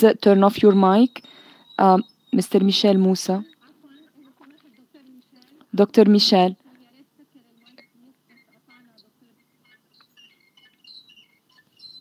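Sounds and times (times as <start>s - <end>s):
faint bird chirps: 0.1s - 12.0s.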